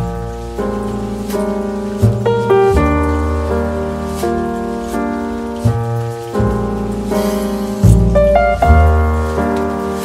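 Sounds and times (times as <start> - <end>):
deep bass: 0.0 - 10.0
piano background music: 0.0 - 10.0.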